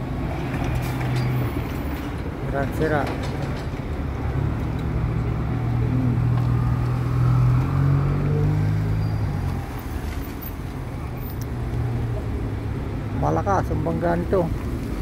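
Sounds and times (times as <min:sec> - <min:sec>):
street traffic: 0:00.0 - 0:15.0
vehicle engine humming: 0:00.0 - 0:15.0.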